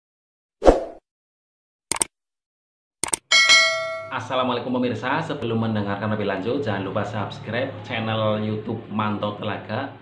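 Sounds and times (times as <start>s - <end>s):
short clicks: 1.9s - 2.1s, 3.0s - 3.2s
bright bell ding: 3.3s - 4.3s.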